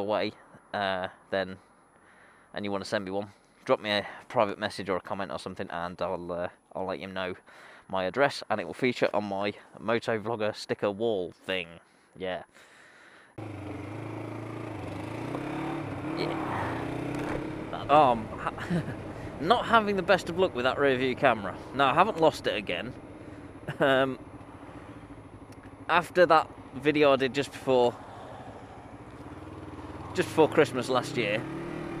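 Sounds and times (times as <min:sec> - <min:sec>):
motorcycle engine running: 0:13.4 - 0:32.0
road noise: 0:13.4 - 0:32.0.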